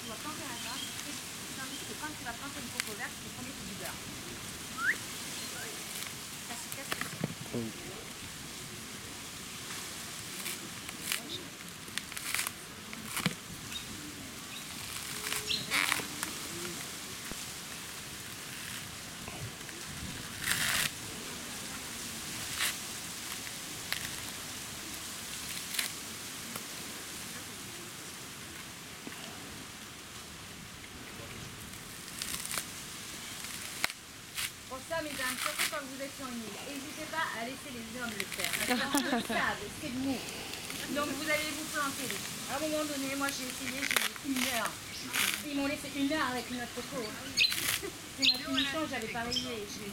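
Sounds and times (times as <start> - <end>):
coconut husk cracking and ripping: 0.0 - 27.1, 28.4 - 49.2
steady hiss: 0.0 - 49.9.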